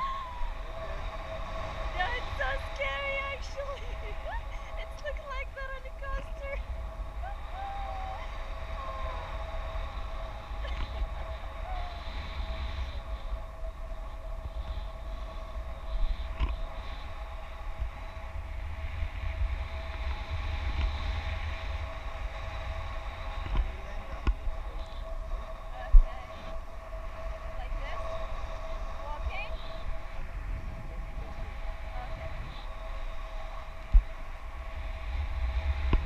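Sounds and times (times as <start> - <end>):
faint steady whine: 0.0 - 36.0
wind buffeting microphone: 0.0 - 36.0.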